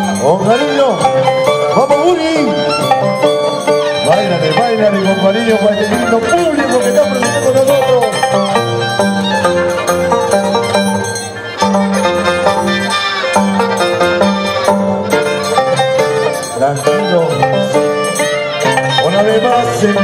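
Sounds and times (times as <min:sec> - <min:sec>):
harp plucked bass notes: 0:00.0 - 0:20.0
violin melody: 0:00.0 - 0:20.0.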